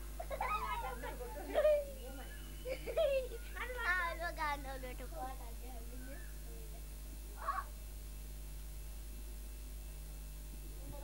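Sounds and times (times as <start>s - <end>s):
tape hiss: 0.0s - 11.0s.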